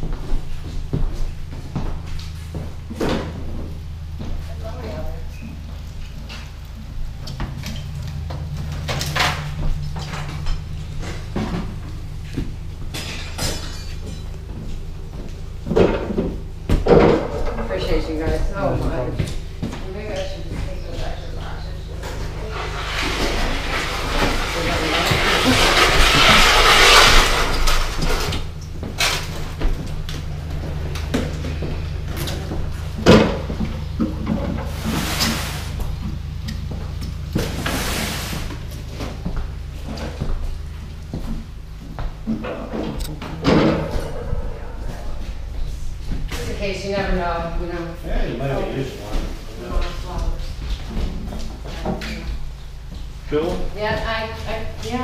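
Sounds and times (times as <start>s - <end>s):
steady low hum: 0.0s - 55.0s
faint voices: 42.5s - 52.4s.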